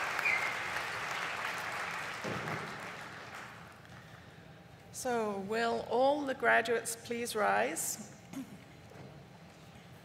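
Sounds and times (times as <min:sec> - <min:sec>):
audience applause: 0:00.0 - 0:03.8.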